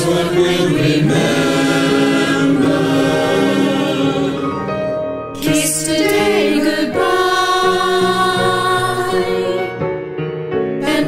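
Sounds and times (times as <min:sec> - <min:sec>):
choir singing long notes: 0:00.0 - 0:09.6, 0:10.8 - 0:11.0.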